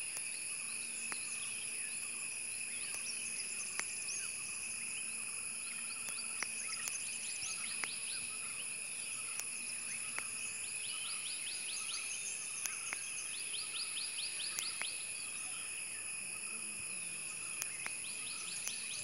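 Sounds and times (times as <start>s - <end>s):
insect chorus: 0.0s - 19.0s
bird with sharp repeated notes: 9.2s - 15.3s, 17.4s - 19.0s.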